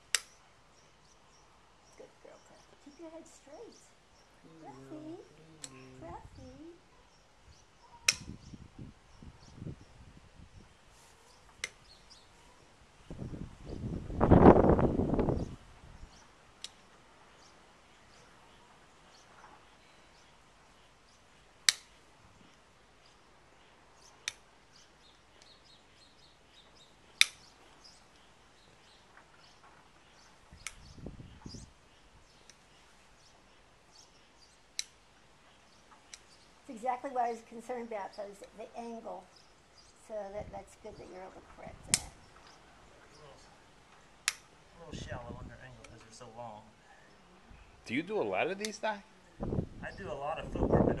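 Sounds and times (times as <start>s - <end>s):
hoof nippers snapping: 0.0s - 0.4s, 5.4s - 6.0s, 8.0s - 8.4s, 11.5s - 11.8s, 16.6s - 16.9s, 21.6s - 22.6s, 24.2s - 24.5s, 27.1s - 28.3s, 30.6s - 30.9s, 32.4s - 32.6s, 34.7s - 35.1s, 35.9s - 36.4s, 41.9s - 42.6s, 44.2s - 44.6s.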